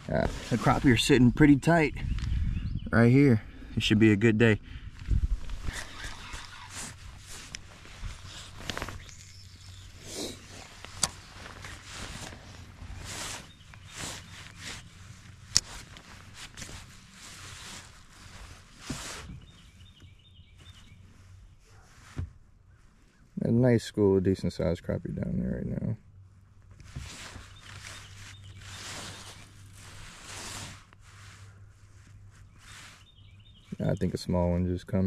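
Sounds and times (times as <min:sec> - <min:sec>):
fishing rod handling rustle: 0:05.0 - 0:23.2, 0:26.6 - 0:33.1.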